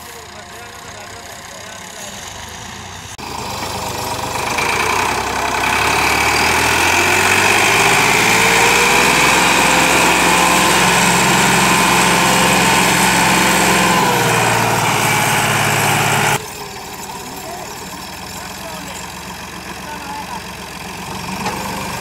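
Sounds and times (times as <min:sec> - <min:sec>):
tractor diesel engine running: 0:00.0 - 0:22.0.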